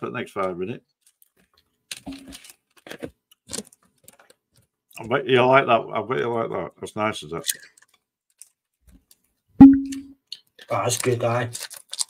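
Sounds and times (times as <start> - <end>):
loud steady tone: 9.6 - 10.1.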